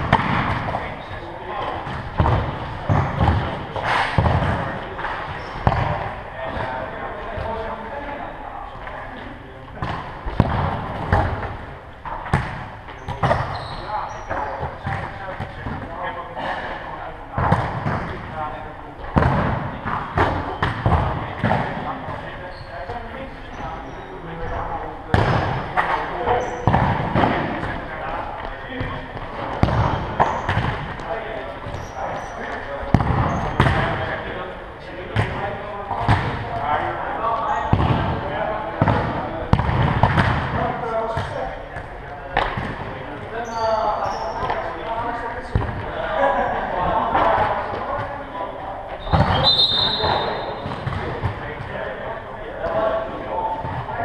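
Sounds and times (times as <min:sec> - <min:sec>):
players calling and shouting: 0:00.0 - 0:54.0.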